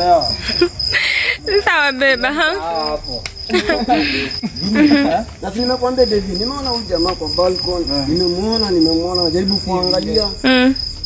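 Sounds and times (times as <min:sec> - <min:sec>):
cricket chirping: 0:00.0 - 0:11.0
men's excited voices: 0:01.4 - 0:10.3.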